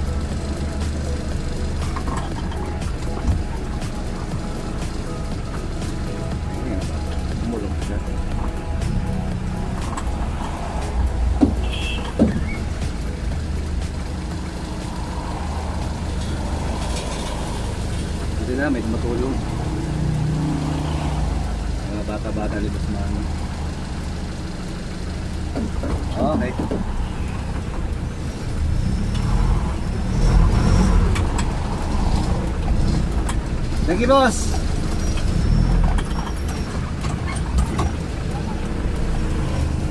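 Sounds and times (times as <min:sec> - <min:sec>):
vehicle engine idling: 0:00.0 - 0:39.9.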